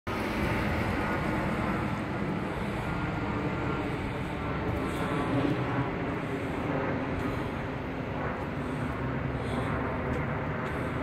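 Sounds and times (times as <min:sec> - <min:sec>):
low road rumble: 0:00.1 - 0:11.0.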